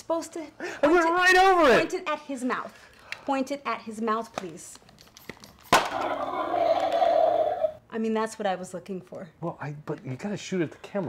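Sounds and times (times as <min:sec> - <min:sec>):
toy blaster crack: 0:05.7 - 0:07.7
electronic toy growl: 0:05.9 - 0:07.8.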